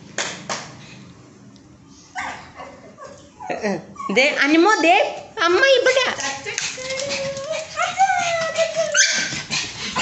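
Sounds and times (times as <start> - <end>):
dog yelping: 2.2 - 5.1, 7.0 - 9.5
dog whining: 6.8 - 9.5.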